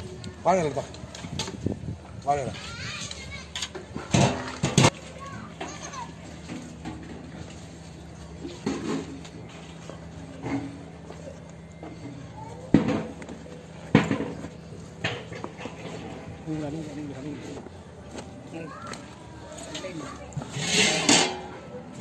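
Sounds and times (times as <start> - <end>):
children and adults talking: 0.0 - 22.0.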